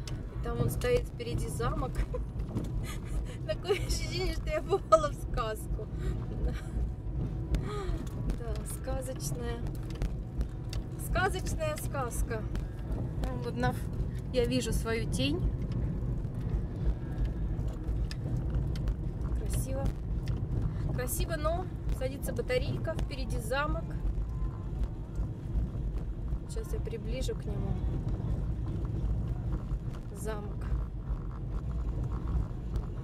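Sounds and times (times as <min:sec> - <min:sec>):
road and tyre rumble: 0:00.0 - 0:33.0.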